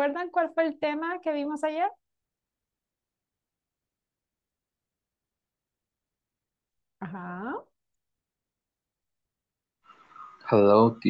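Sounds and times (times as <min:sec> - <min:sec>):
person speaking: 0:10.5 - 0:11.0.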